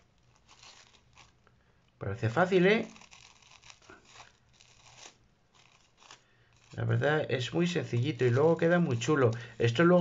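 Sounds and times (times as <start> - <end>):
paper rustling: 2.1 - 10.0
scissors snipping paper: 2.4 - 6.9, 7.8 - 10.0.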